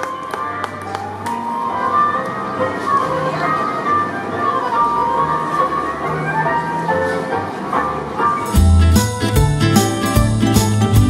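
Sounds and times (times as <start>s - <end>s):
tango music: 0.0s - 11.0s.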